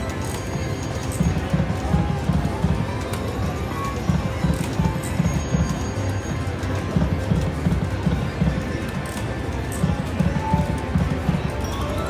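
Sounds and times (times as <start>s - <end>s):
slot machine spin music: 0.0s - 12.0s.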